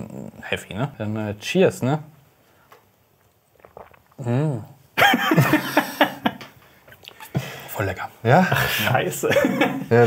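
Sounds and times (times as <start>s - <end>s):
sipping sounds: 3.2s - 4.8s.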